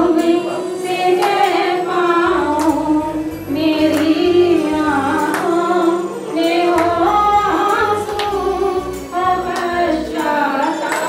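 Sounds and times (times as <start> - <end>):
woman singing through microphone: 0.0 - 11.0
women singing devotional song: 0.0 - 11.0.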